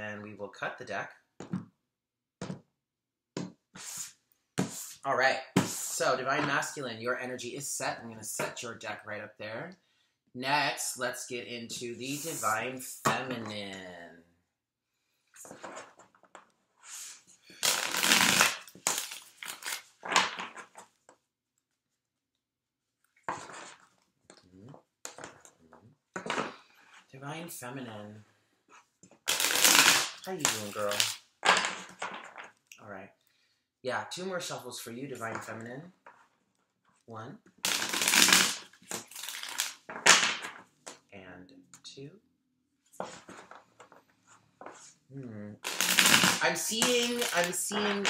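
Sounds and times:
cards being shuffled: 17.6s - 20.9s, 29.2s - 32.5s, 37.6s - 40.6s, 45.6s - 48.0s
cards rustling: 29.2s - 32.5s, 45.7s - 48.0s.

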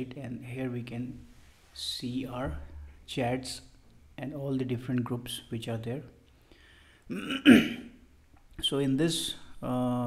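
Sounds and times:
man coughing: 7.1s - 8.0s.

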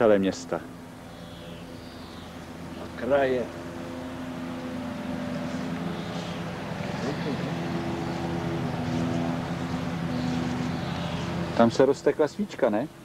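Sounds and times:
steady mechanical hum: 0.0s - 13.0s.

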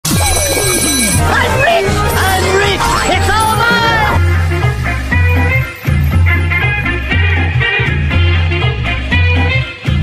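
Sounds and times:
high ringing tone: 0.1s - 4.4s
cartoon music with pulsing bass: 0.1s - 9.4s.

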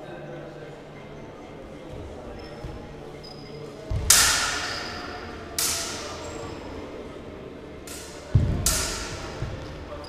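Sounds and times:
steel sabres clashing: 4.0s - 6.8s, 7.8s - 9.5s.

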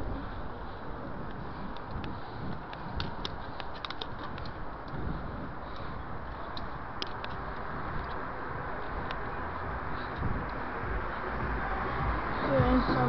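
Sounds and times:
tyres on asphalt: 0.0s - 13.0s
wind rumble: 0.0s - 13.0s
bicycle clicks and rattles: 1.3s - 8.2s.

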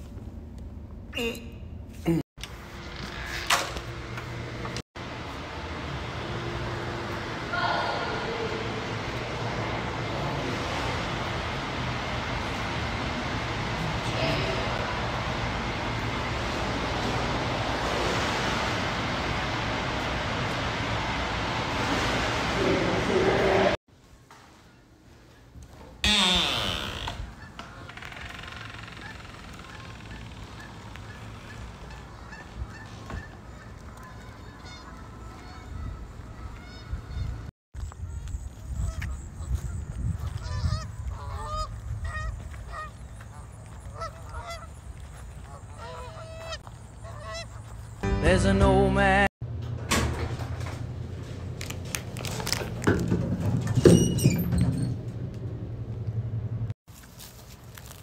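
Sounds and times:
honking bird calls: 28.8s - 37.4s, 40.4s - 48.0s.

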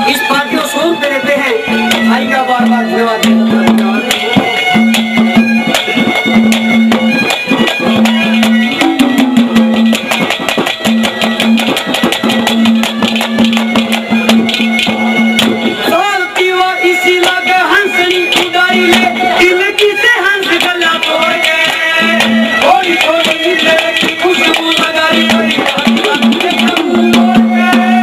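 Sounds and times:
harmonium melody: 0.0s - 28.0s
fast drum strokes: 1.6s - 28.0s.

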